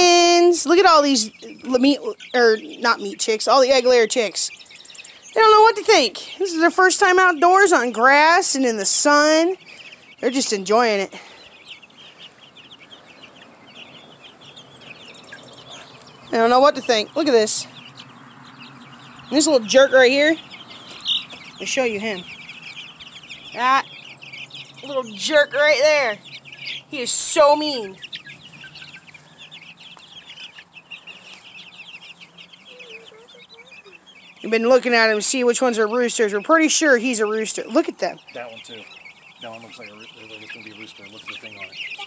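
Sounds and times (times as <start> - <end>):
chicks cheeping: 0.0 - 42.0.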